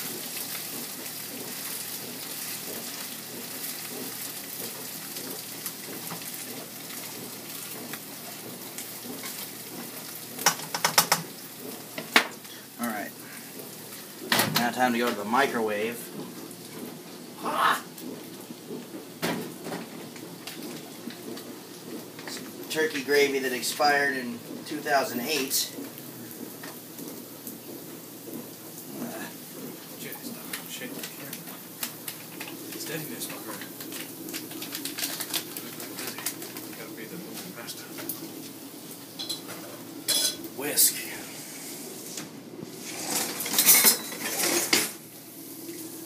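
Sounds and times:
kitchen handling clicks and knocks: 10.4 - 11.3
dish rustling and clattering: 42.2 - 45.0.

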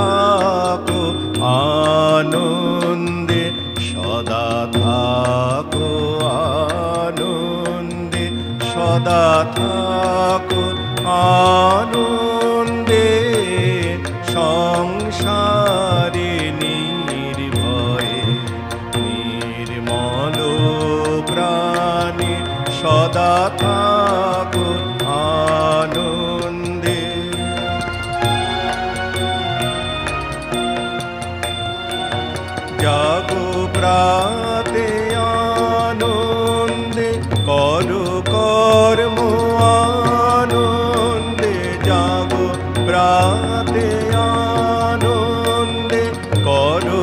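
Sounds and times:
man singing into a microphone: 0.0 - 28.9, 32.6 - 47.0
low musical accompaniment: 0.0 - 47.0
tabla drum strokes: 0.0 - 47.0.

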